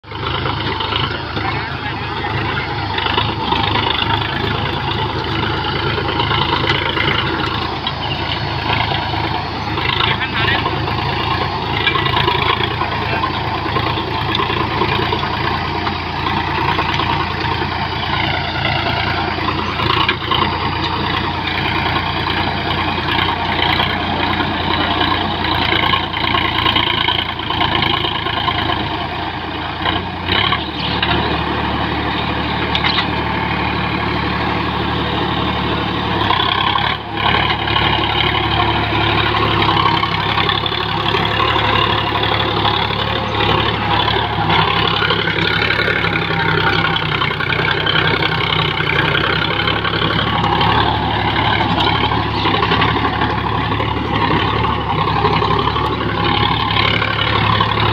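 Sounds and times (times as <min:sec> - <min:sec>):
tractor diesel engine running: 0:00.0 - 0:57.9.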